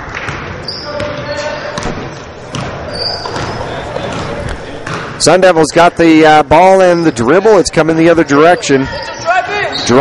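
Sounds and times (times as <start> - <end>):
murmur of background voices: 1.3 - 10.0
basketball bouncing on hardwood floor: 1.8 - 5.2.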